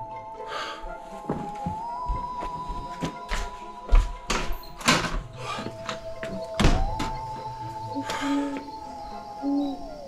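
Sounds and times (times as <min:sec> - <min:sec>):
eerie music drone: 0:00.0 - 0:10.0.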